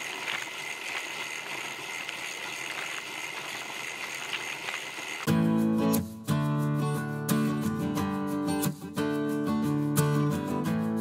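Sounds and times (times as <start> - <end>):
bicycle tyre noise: 0.0 - 5.3.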